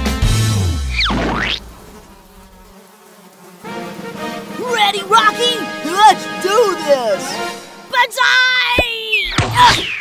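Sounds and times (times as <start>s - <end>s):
insect-like buzzing: 0.1s - 7.9s.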